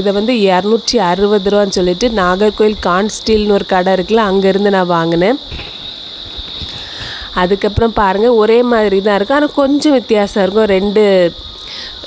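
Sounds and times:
crickets chirring: 0.0s - 12.0s.

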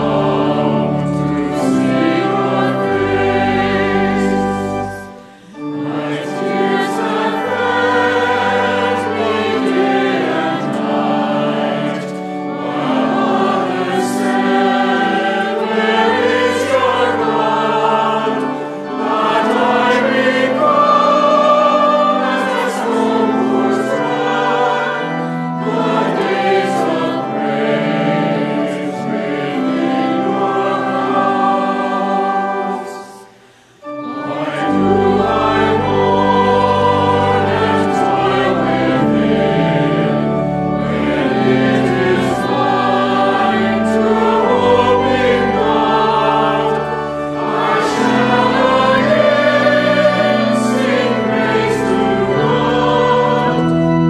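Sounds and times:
congregation singing a hymn: 0.0s - 54.0s.

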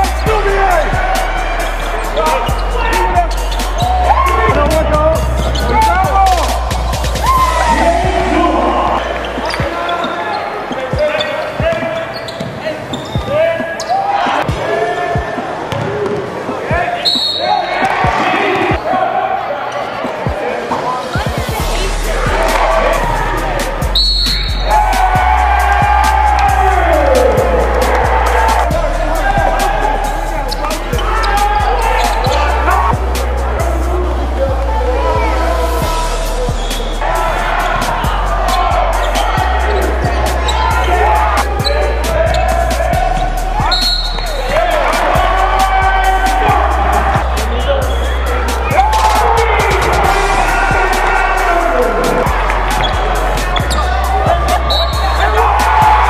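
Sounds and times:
music with stepped bass line: 0.0s - 9.8s, 21.2s - 56.0s
players calling out: 0.0s - 56.0s.

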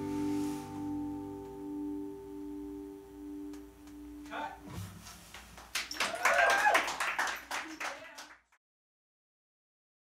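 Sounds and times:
people clapping: 5.3s - 8.6s.

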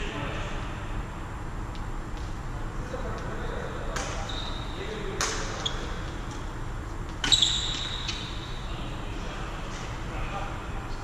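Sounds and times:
high squeak: 7.2s - 8.6s.

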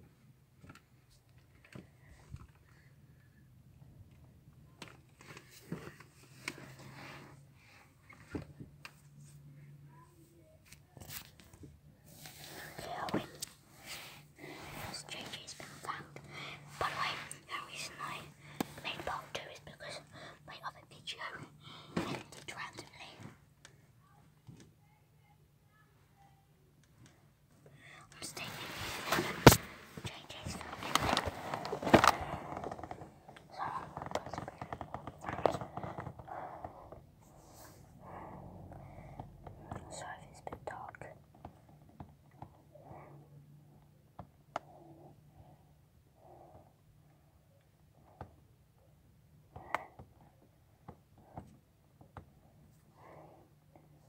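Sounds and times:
person whispering: 12.4s - 23.3s, 27.7s - 38.3s, 39.1s - 41.3s.

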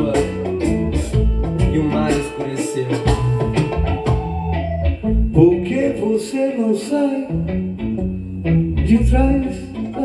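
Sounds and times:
drum beat: 0.0s - 4.6s
bass line: 0.0s - 10.0s
guitar: 0.0s - 10.0s.

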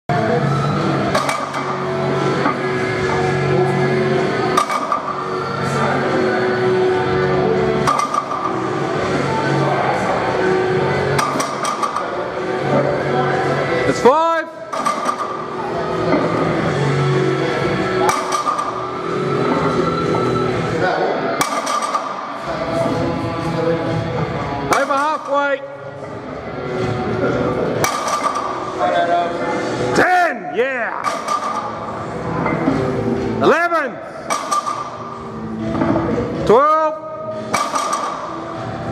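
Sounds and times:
background music: 0.1s - 38.9s
barbell plates clinking: 7.8s - 8.7s, 11.2s - 12.1s, 14.7s - 15.5s, 18.0s - 18.9s, 27.8s - 28.6s, 37.4s - 38.4s.

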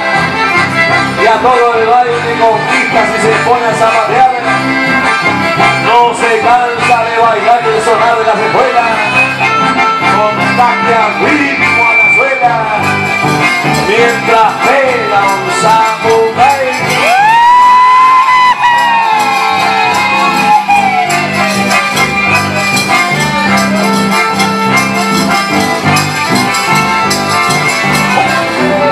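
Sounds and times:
accordions playing melody: 0.0s - 17.1s, 17.8s - 28.9s
electric bass line: 0.0s - 28.9s
live folk band: 0.0s - 28.9s
strummed guitars: 0.0s - 28.9s
long high-pitched shout: 17.0s - 21.6s.

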